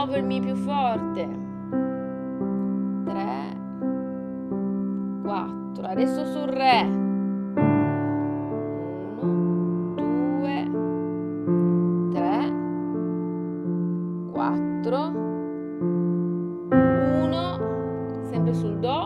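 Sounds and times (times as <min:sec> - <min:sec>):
piano playing broken chords: 0:00.0 - 0:19.0.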